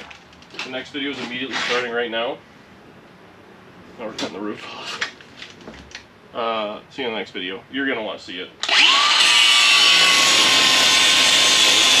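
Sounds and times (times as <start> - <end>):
angle grinder grinding metal: 8.6 - 12.0.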